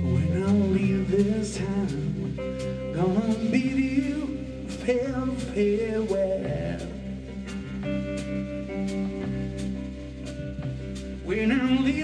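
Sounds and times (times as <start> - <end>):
man singing: 0.0 - 7.5, 11.2 - 12.0
bass guitar: 0.0 - 12.0
drum kit with cymbal hits: 0.0 - 12.0
electric guitar: 0.0 - 12.0.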